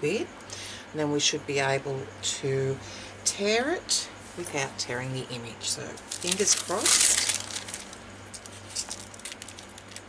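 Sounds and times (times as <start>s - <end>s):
low steady hum: 0.0s - 10.0s
damp paper tearing: 6.0s - 10.0s.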